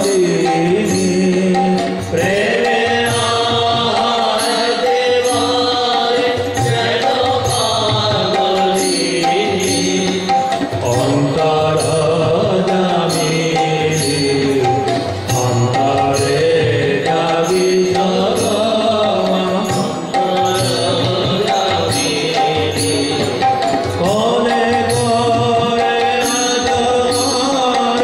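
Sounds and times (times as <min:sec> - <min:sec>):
chanted singing: 0:00.0 - 0:28.0
harmonium: 0:00.0 - 0:28.0
sharp percussion strokes: 0:00.0 - 0:28.0.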